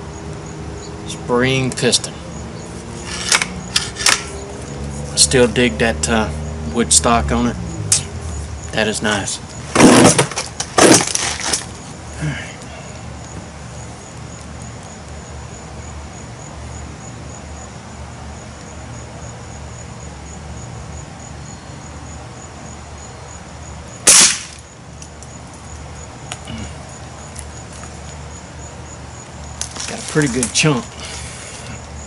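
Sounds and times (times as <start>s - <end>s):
air rifle shot: 24.0s - 24.6s.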